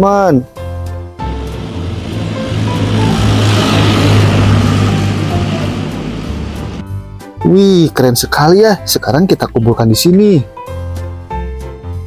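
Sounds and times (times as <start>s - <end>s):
tank engine and tracks rumbling: 1.2s - 6.9s.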